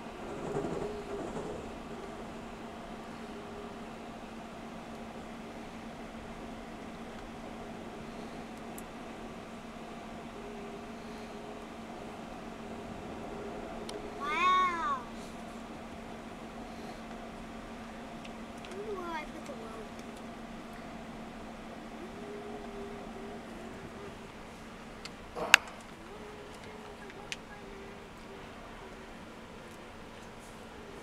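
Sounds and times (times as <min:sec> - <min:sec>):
cat meowing: 0:14.2 - 0:15.0.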